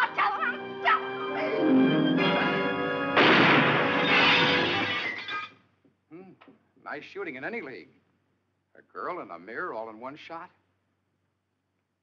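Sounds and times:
dramatic orchestral music: 0.0 - 4.8
loud ringing crash: 3.1 - 5.5.

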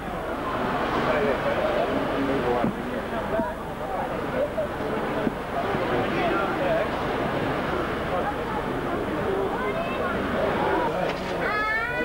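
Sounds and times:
chatter of many voices: 0.0 - 12.0.

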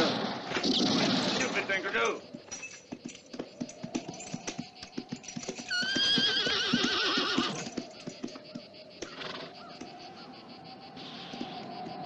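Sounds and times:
horse hooves clopping: 2.0 - 10.3
horse whinnying: 5.4 - 8.0, 9.0 - 9.5.

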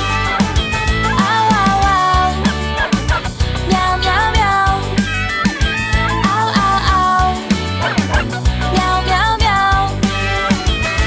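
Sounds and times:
children's song music: 0.0 - 11.0
dog barking: 2.8 - 3.4, 7.8 - 8.5.

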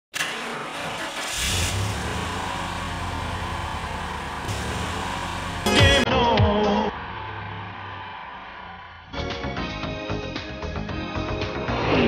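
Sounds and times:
car engine humming: 0.2 - 6.1
loud downward sliding sound: 0.5 - 6.1.

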